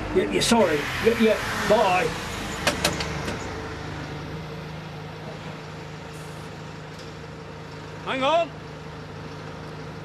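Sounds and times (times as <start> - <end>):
bus engine humming: 0.0 - 10.0.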